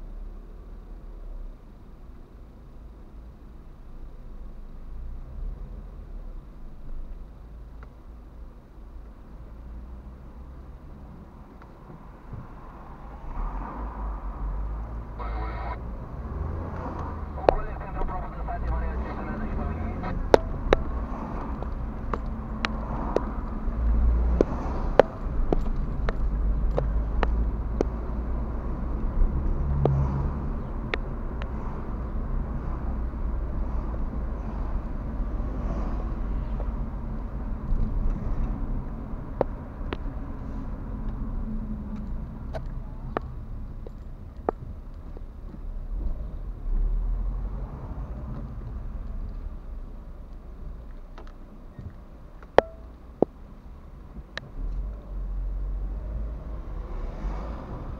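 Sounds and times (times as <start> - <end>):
car engine and road rumble: 0.0 - 57.9.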